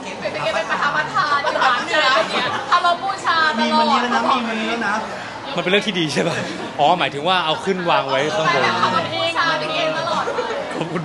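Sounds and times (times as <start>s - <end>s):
voices talking over each other: 0.0s - 11.0s.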